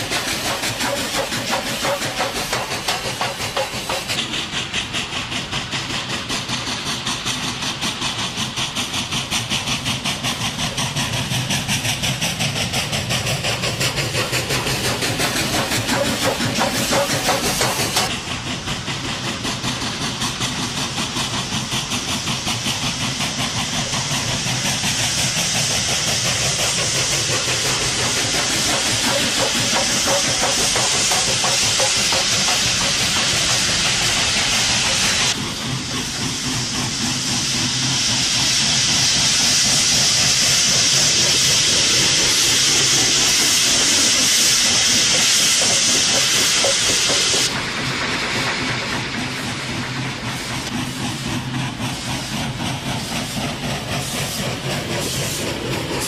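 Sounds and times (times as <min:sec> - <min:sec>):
steam hiss: 0:00.0 - 0:56.0
steam locomotive exhaust beats: 0:00.0 - 0:56.0.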